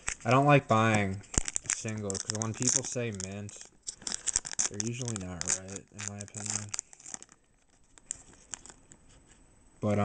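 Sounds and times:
foil wrapper crinkling and tearing: 0.0 - 9.0.

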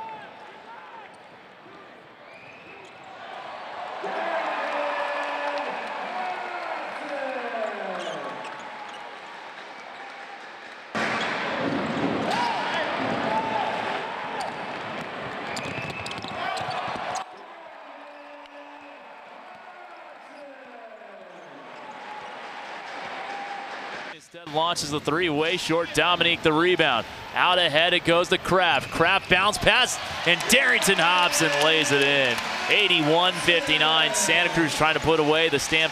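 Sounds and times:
sneaker squeaks on court: 15.6 - 17.2
crowd voices: 24.9 - 35.9.

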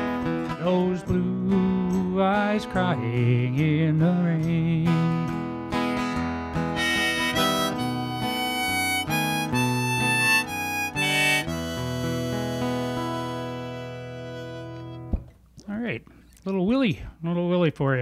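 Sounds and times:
strummed acoustic guitar: 0.0 - 15.4
harmonica melody: 5.7 - 15.1.

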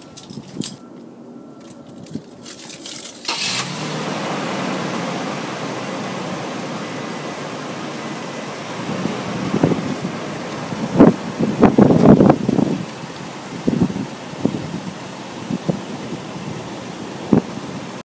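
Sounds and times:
truck engine idling: 3.3 - 18.0.

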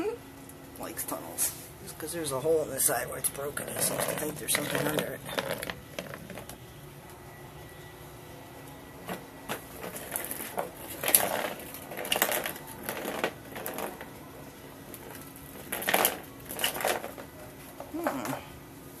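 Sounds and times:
faint steady hum: 0.0 - 19.0
crinkly rustling and crackling: 3.2 - 6.6, 9.0 - 18.3.

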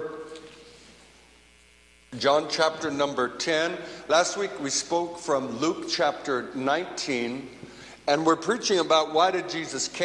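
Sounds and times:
faint electrical mains hum: 0.0 - 10.0
man's voice echoing: 2.1 - 10.0.

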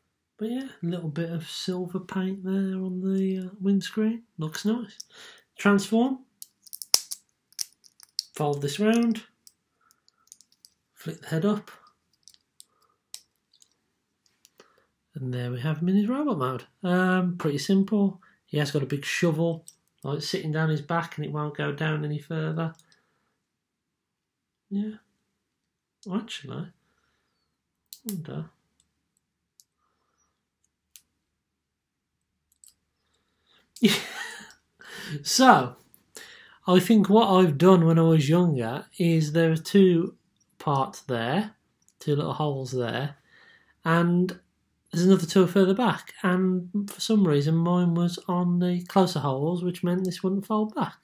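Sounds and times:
plastic toy parts clicking: 6.4 - 10.8, 12.1 - 13.8.

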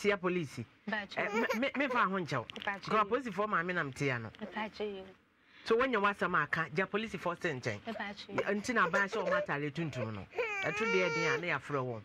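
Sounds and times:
woman talking: 4.4 - 5.2, 7.9 - 9.4.

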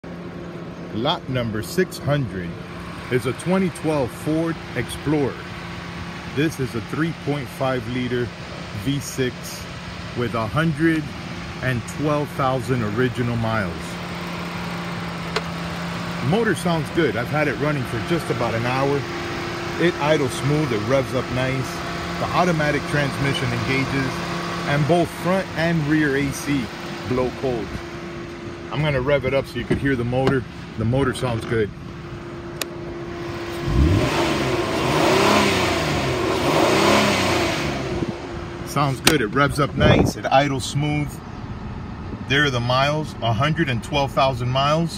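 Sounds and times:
car engine idling: 0.0 - 44.9.

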